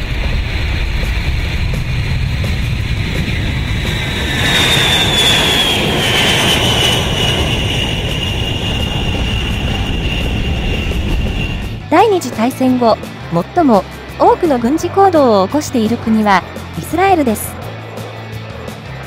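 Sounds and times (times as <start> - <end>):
high jet whine: 0.0 - 19.0
jet engines roaring at takeoff: 0.0 - 19.0.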